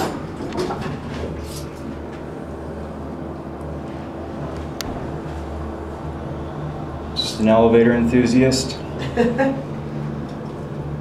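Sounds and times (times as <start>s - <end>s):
elevator higher drone: 0.0s - 11.0s
elevator low hum: 0.0s - 11.0s.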